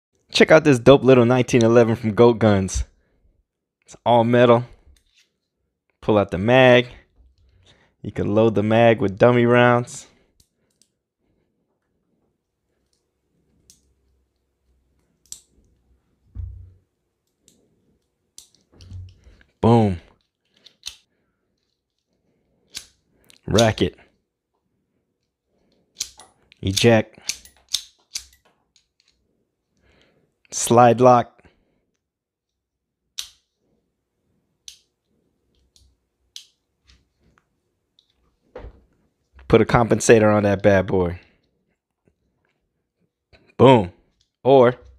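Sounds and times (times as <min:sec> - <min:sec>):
small metal clicks: 0:13.6 - 0:15.8, 0:18.4 - 0:19.3, 0:20.1 - 0:23.7, 0:25.7 - 0:29.2
dull low thump: 0:16.3 - 0:16.8
small metal clicks of toy pistol: 0:20.5 - 0:21.1, 0:22.7 - 0:23.0, 0:26.0 - 0:29.2, 0:33.2 - 0:33.5.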